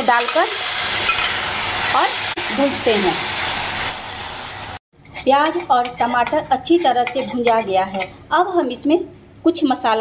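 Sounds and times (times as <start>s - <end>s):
paste sizzling in hot oil: 0.0s - 7.5s
spatula stirring: 5.0s - 8.2s.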